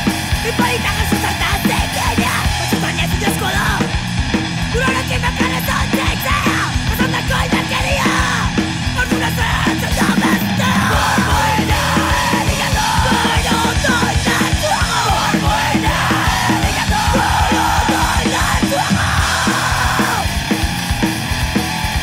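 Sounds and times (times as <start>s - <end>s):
punk song with yelled vocals: 0.0s - 22.0s.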